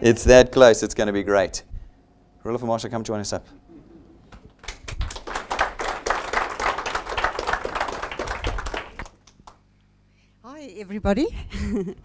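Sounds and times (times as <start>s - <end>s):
audience applauding: 4.3s - 9.6s.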